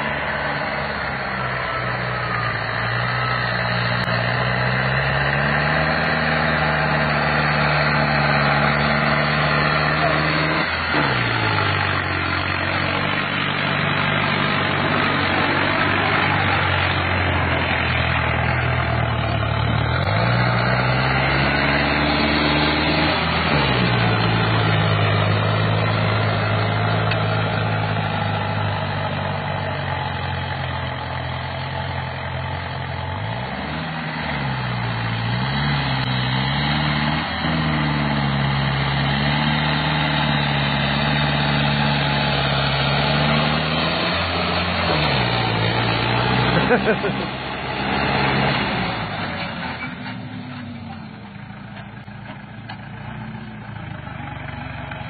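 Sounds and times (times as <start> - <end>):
tractor diesel engine under load: 0.0 - 55.0.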